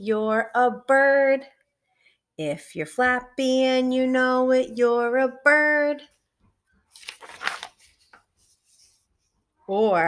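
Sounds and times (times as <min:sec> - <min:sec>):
faint paper handling sounds: 0:06.4 - 0:09.5
page turning rustle: 0:06.8 - 0:09.3.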